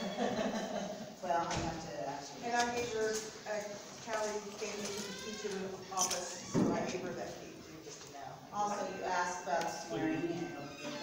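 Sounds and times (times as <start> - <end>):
indistinct voices talking: 8.5 - 11.0.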